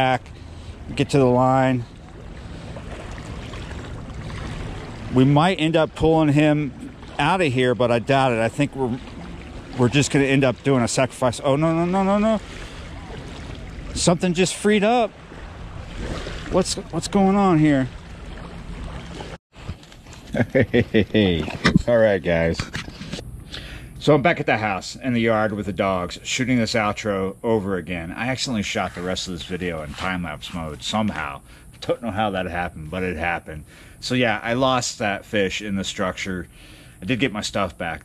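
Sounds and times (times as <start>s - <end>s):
wind: 0.0s - 38.0s
river water washing against rocks: 2.1s - 19.4s
wind rumbling on microphone: 15.1s - 19.8s
man laughing: 20.2s - 21.8s.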